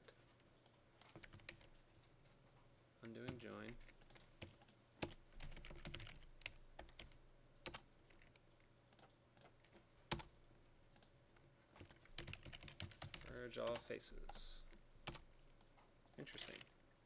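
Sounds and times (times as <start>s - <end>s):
faint keyboard typing: 0.0s - 16.9s.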